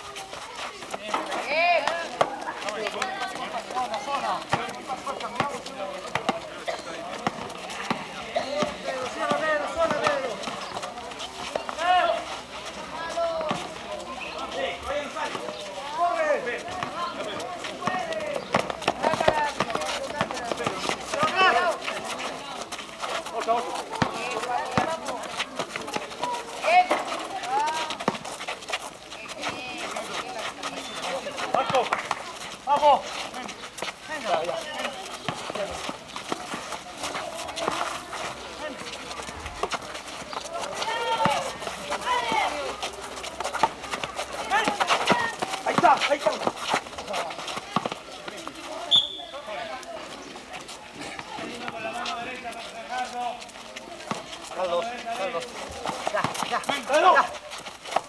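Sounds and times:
shoes striking pavement: 0:00.0 - 0:58.0
players shouting: 0:00.8 - 0:28.2, 0:29.1 - 0:49.8, 0:54.0 - 0:57.6
basketball bouncing: 0:04.5 - 0:06.5, 0:17.8 - 0:21.6, 0:23.9 - 0:27.1, 0:43.3 - 0:46.6.

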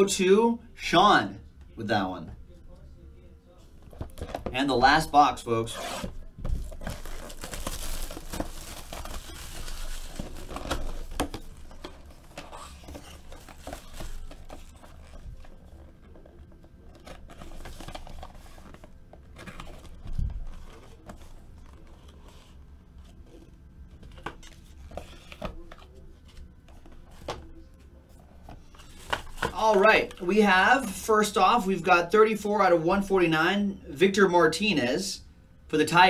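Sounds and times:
cardboard and wrapping crinkling: 0:05.8 - 0:23.4, 0:24.0 - 0:30.3.

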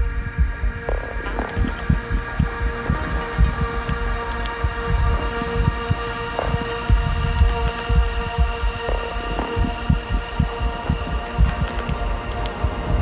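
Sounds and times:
low throbbing pulse: 0:00.0 - 0:13.0
synthesizer drone: 0:00.0 - 0:13.0.

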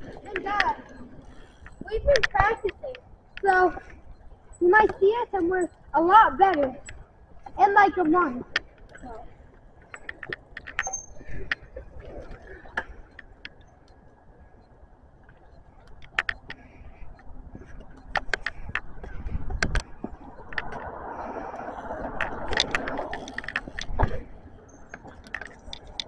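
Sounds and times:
bicycle clicks and rattles: 0:00.0 - 0:14.1, 0:14.7 - 0:26.0
steady rushing noise: 0:15.7 - 0:26.0.

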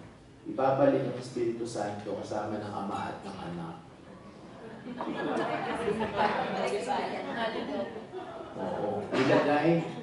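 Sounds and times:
voices talking in large room: 0:00.0 - 0:10.0.

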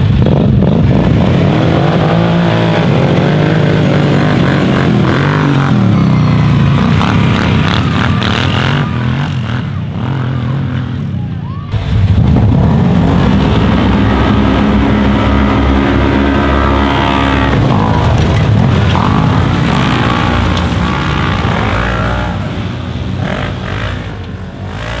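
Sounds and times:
utv engines revving: 0:00.0 - 0:25.0.

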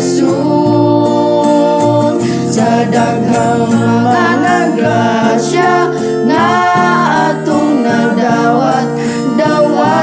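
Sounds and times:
men singing gospel in harmony: 0:00.0 - 0:10.0.

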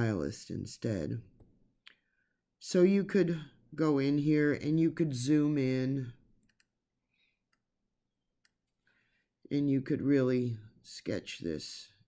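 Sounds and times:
computer mouse clicks: 0:06.4 - 0:06.8.

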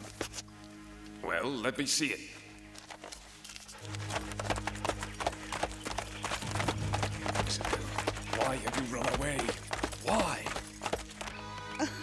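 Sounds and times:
galloping hoofbeats: 0:02.7 - 0:11.8
low music drone: 0:03.8 - 0:12.0.

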